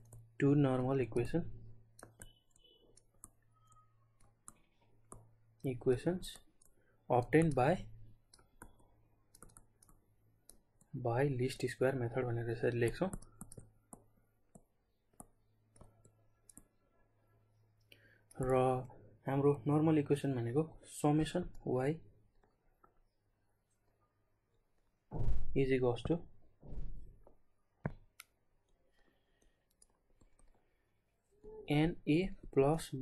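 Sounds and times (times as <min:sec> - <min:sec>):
stylus tapping on tablet: 0:01.8 - 0:05.6, 0:06.3 - 0:10.9, 0:12.8 - 0:16.7, 0:26.0 - 0:28.4.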